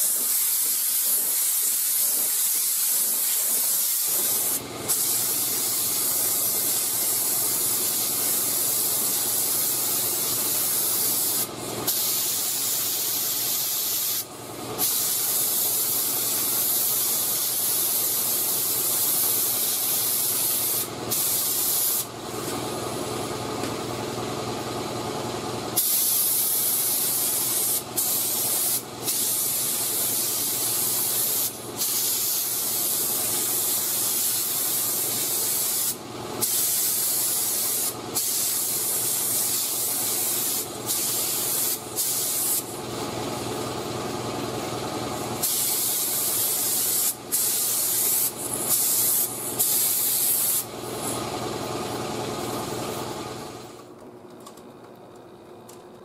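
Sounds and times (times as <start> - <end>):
spray gun hissing: 0.0 - 22.1, 25.8 - 42.7, 45.4 - 51.2.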